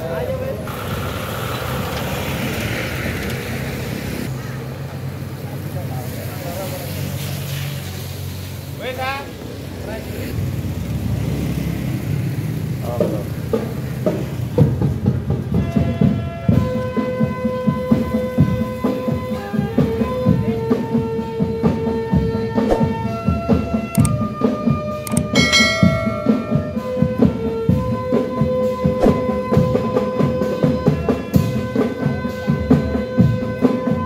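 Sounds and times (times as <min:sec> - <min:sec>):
held instrument tones: 0:25.1 - 0:27.3
drumming: 0:25.1 - 0:34.0.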